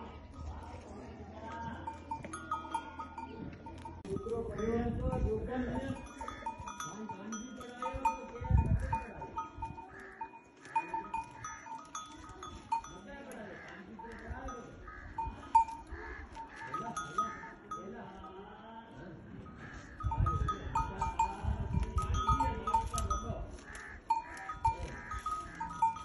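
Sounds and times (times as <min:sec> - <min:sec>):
livestock bells clinking: 0:00.0 - 0:18.7, 0:19.4 - 0:26.0.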